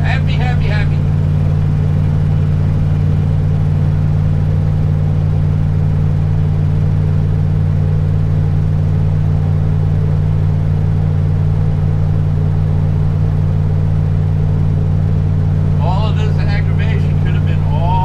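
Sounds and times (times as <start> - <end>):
motorhome engine and road drone: 0.0 - 18.0.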